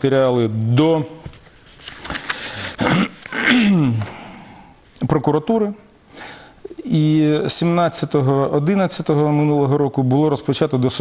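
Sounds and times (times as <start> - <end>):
man's sharp intake of breath: 6.1 - 6.7.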